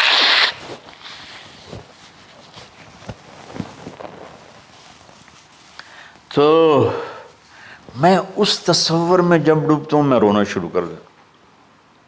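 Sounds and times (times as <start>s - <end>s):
man blowing his nose: 0.0s - 0.6s.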